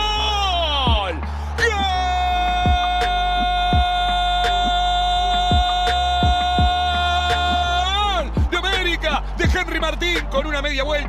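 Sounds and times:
commentator shouting goal: 0:00.0 - 0:11.0
hip-hop beat with deep bass: 0:00.0 - 0:11.0.

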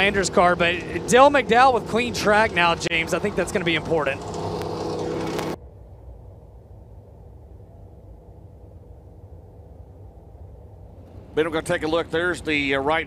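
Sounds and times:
distant race car engines rumbling: 0:00.0 - 0:13.0
higher pitched engine: 0:00.0 - 0:13.0.

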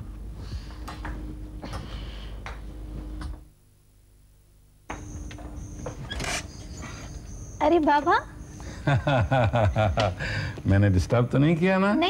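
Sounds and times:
faint high whine: 0:00.0 - 0:12.0
wooden door opening: 0:05.9 - 0:06.6.

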